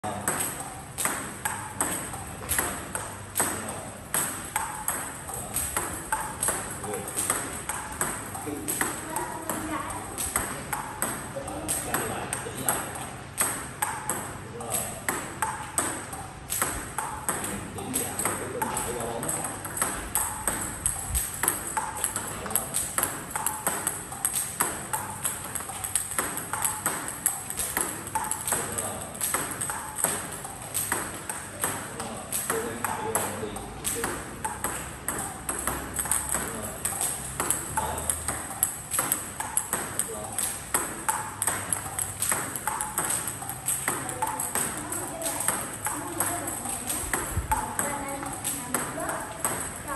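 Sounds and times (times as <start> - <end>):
ping-pong balls hit and bouncing: 0.0 - 49.9.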